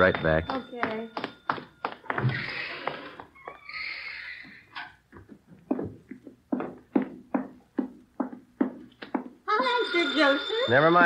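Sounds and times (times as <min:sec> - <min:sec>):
telephone bell ringing: 0:00.0 - 0:03.2, 0:09.5 - 0:11.0
footsteps on hard floor: 0:00.1 - 0:03.6, 0:04.4 - 0:09.8.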